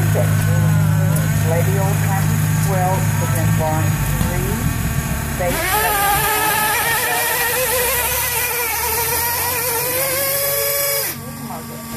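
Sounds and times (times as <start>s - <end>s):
toy truck motor whining: 5.4s - 11.9s.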